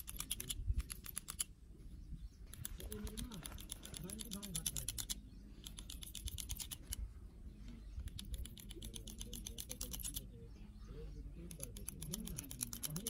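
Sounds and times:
hand clippers snipping hair: 0.0s - 1.5s, 2.5s - 7.0s, 8.1s - 10.2s, 11.5s - 13.0s.

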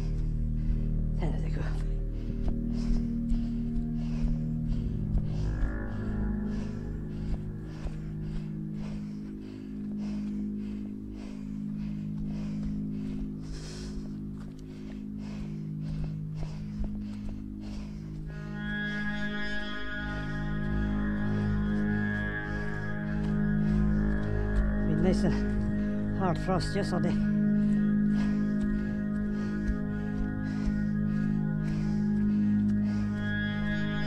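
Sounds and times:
low drone-like tones: 0.0s - 34.0s.

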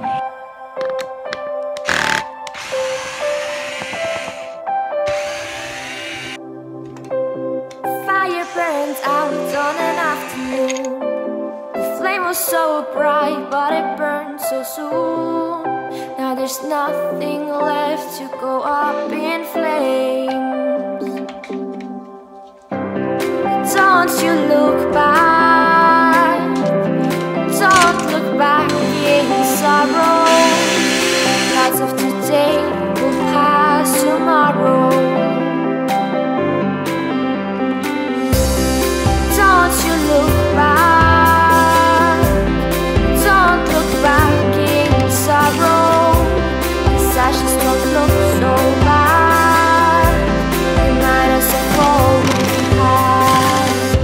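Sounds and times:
background music: 0.0s - 54.0s
cordless drill whirring: 1.8s - 6.4s, 8.3s - 10.8s, 28.6s - 31.8s
loud pop song: 8.0s - 10.9s, 23.5s - 35.3s, 38.7s - 54.0s.

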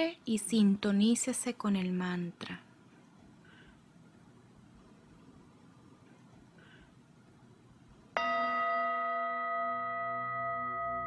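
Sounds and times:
singing bowl bell ringing: 8.2s - 11.0s.

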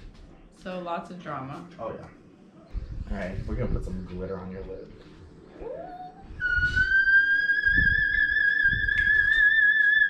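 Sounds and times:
high sung note with vibrato: 5.6s - 10.0s.

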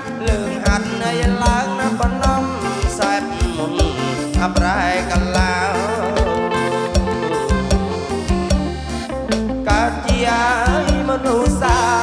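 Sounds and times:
man singing: 0.0s - 7.8s, 9.6s - 12.0s
bass: 0.0s - 12.0s
electric guitar: 0.0s - 12.0s
keyboard: 0.0s - 12.0s
drum kit dance beat: 0.1s - 12.0s.

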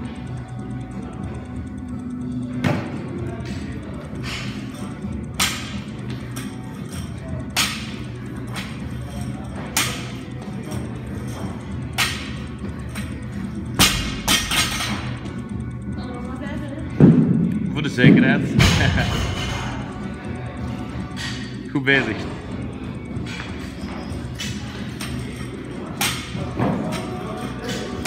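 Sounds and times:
background music: 0.0s - 28.0s.

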